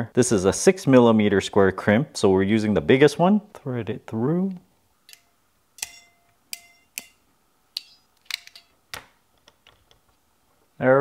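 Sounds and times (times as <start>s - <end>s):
crimping tool metallic clicks: 5.1s - 7.2s, 7.8s - 8.7s.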